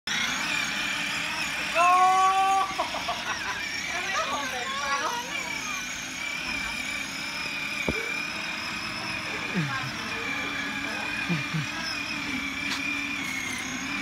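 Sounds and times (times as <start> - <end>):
toy go-kart electric motor whining: 0.1 - 14.0
voices: 1.5 - 14.0
loud held voice-like call: 1.7 - 3.6, 9.2 - 11.8.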